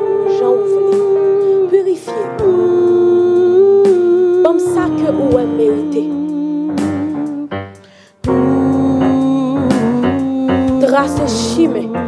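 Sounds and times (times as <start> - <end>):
woman humming: 0.0 - 7.5, 8.3 - 12.0
sustained keyboard chords: 0.0 - 12.0.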